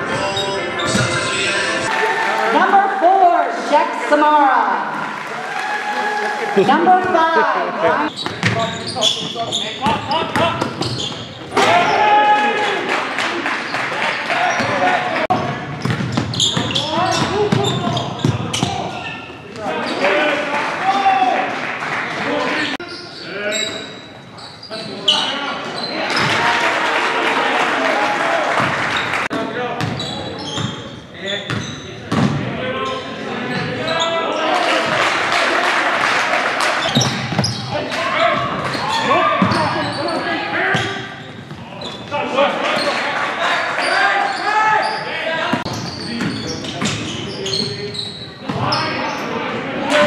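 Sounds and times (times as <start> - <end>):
shouting and chatter: 0.0 - 10.6, 11.5 - 15.7, 16.4 - 30.5, 32.5 - 50.0
basketball bouncing on hardwood floor: 15.8 - 17.4.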